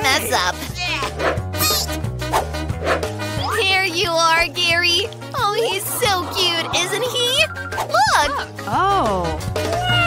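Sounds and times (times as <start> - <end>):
background music with bass: 0.0 - 10.0
high yipping squeak: 1.6 - 2.0.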